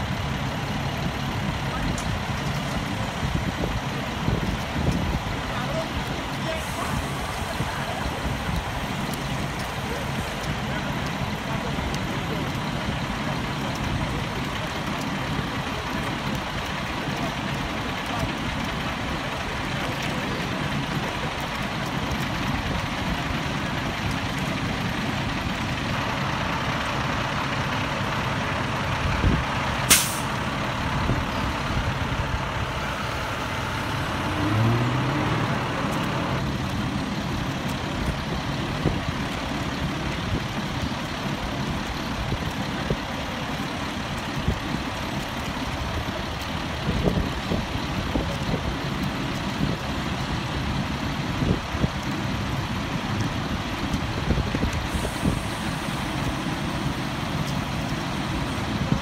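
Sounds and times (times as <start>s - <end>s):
truck engine idling: 0.0s - 59.0s
faint voices: 0.1s - 59.0s
sharp hiss: 29.8s - 30.4s, 54.8s - 56.7s.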